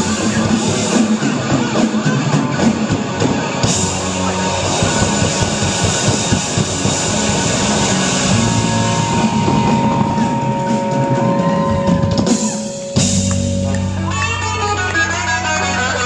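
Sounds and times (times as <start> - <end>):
drum kit with cymbal wash: 0.0 - 16.0
electric guitars: 0.0 - 16.0
live rock band playing: 0.0 - 16.0
steady high tones ringing: 7.1 - 14.1.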